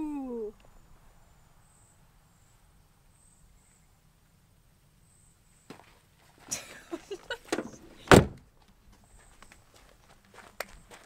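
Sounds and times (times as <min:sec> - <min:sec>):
car door slamming: 0:07.5 - 0:08.4.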